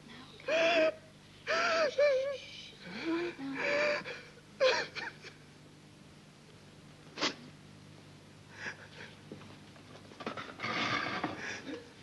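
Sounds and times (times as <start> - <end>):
man crying out in distress: 0.5 - 2.4.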